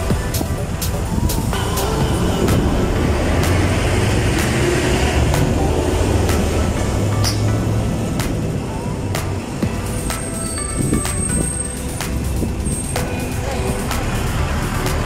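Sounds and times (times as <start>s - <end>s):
music playing: 0.0s - 15.0s
road traffic noise: 0.0s - 15.0s.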